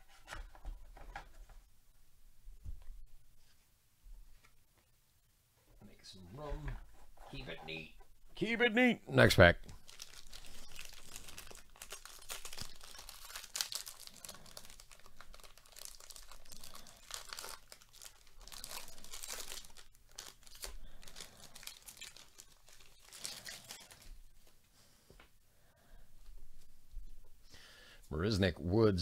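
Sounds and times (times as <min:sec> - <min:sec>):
foil wrapper tearing and crinkling: 0:09.8 - 0:24.1.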